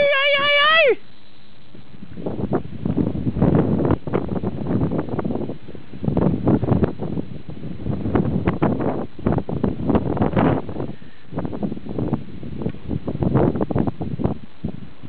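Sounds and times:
wind buffeting microphone: 1.6s - 15.0s.

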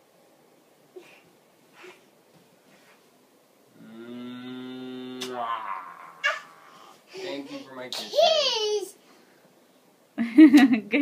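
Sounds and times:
man humming low: 3.7s - 6.6s.

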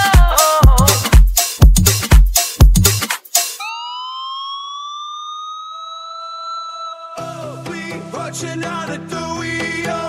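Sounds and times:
rising synthesizer tone: 3.6s - 7.3s.

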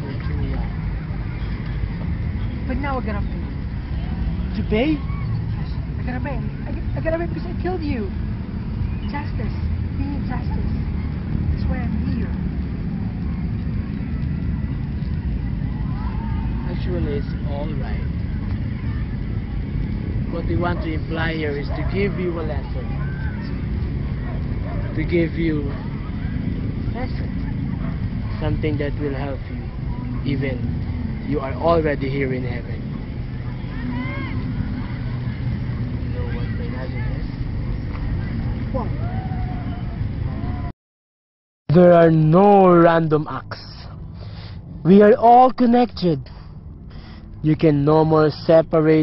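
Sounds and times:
faint voices: 0.0s - 40.7s
low outdoor rumble: 0.0s - 40.7s, 41.7s - 49.0s.

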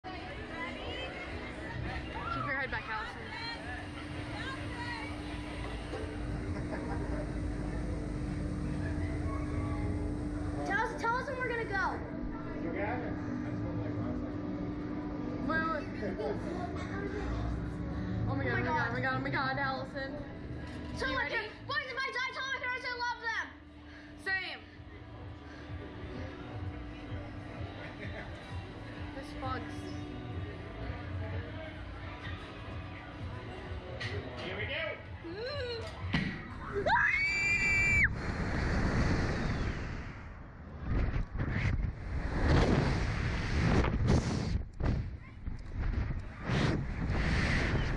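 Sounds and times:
ride machinery humming: 0.0s - 21.6s
wind rushing over microphone: 37.9s - 47.9s.

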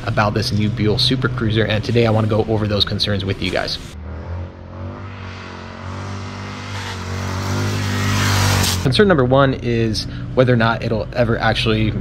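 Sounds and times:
motorcycle engine running: 3.6s - 12.0s.

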